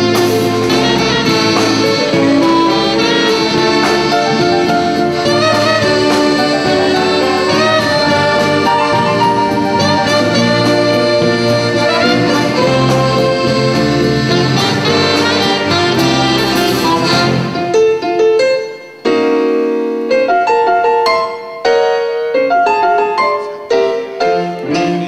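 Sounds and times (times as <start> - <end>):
small band playing instrumental: 0.0 - 25.0.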